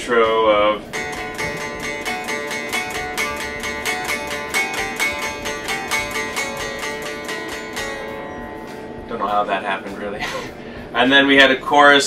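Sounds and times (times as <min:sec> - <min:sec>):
electric guitar riff: 0:00.6 - 0:11.1.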